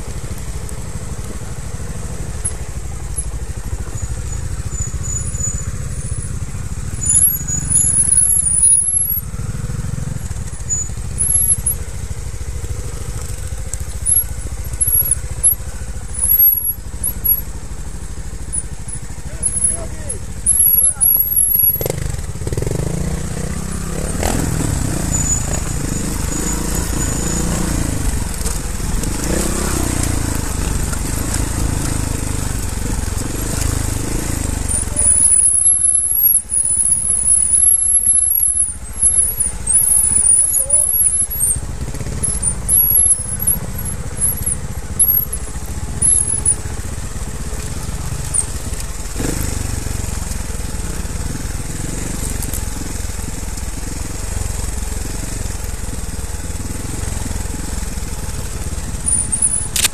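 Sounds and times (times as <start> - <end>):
bike knocking and rattling: 0.0 - 59.9
motorcycle engine at low revs: 0.0 - 59.9
high-pitched squeal: 20.4 - 22.0, 34.7 - 41.6.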